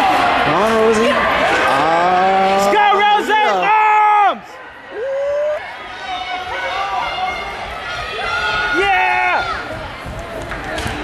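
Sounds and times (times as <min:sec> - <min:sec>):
spectators yelling and cheering: 0:00.0 - 0:11.0.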